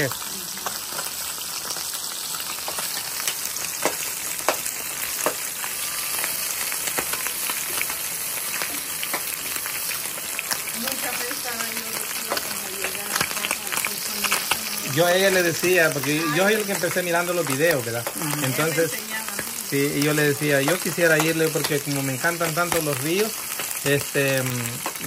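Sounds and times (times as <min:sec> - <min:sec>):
fish sizzling in oil: 0:00.0 - 0:25.0
oil popping and crackling: 0:00.0 - 0:25.0.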